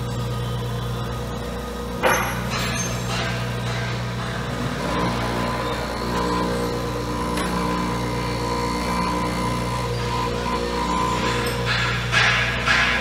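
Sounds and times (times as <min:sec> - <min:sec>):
grinder motor humming: 0:00.0 - 0:13.0
grinding wheel whine: 0:00.0 - 0:13.0.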